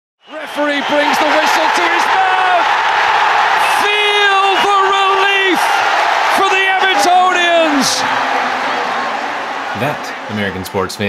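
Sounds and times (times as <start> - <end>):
crowd noise: 0.2 - 11.0
crowd chanting in unison: 5.4 - 10.4.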